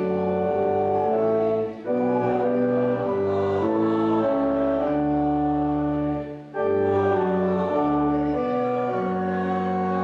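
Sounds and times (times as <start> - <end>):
organ playing a hymn: 0.0 - 10.0.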